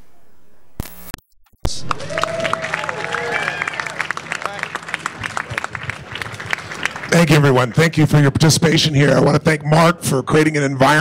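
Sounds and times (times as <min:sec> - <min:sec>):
audience applauding: 0:01.7 - 0:08.4.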